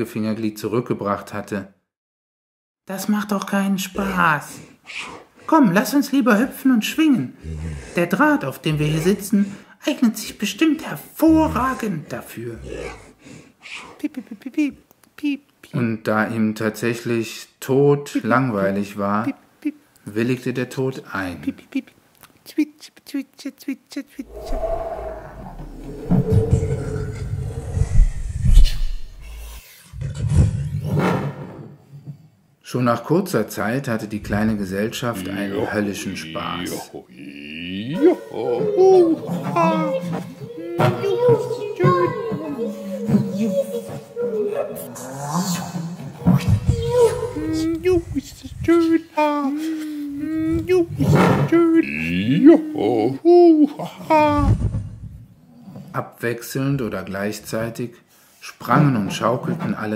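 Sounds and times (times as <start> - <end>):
man making vocal sound effects: 3.9 - 9.6, 11.0 - 15.5, 34.3 - 42.0, 44.4 - 54.6
growl-like wavering tone: 24.3 - 29.3
low rumbling: 24.3 - 29.5.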